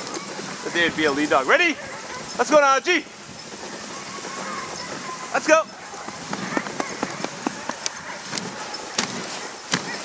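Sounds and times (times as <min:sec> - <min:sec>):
sled hissing on snow: 0:00.0 - 0:10.0
faint patter of paws: 0:00.1 - 0:10.0.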